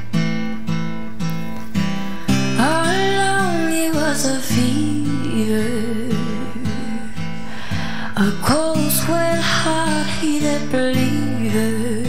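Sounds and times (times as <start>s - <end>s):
acoustic guitar: 0.0s - 12.0s
woman singing a ballad: 2.3s - 12.0s.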